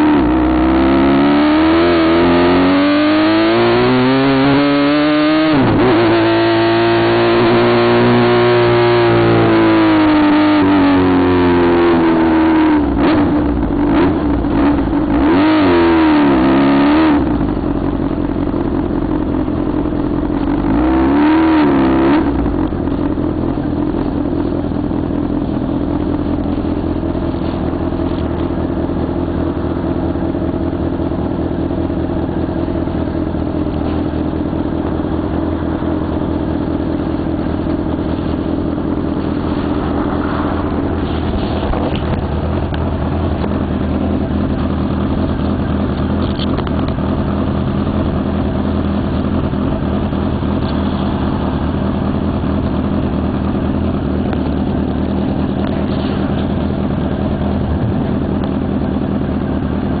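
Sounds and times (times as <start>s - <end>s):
motorcycle engine running: 0.0s - 60.0s.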